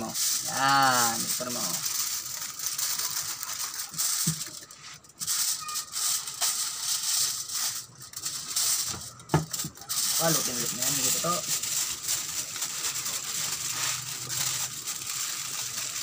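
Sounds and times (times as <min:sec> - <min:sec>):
aluminium foil crinkling: 0:00.0 - 0:16.0.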